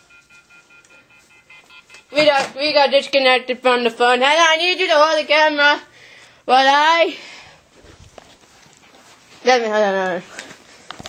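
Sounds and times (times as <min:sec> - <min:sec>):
telephone call-ended tone: 0:00.0 - 0:02.3.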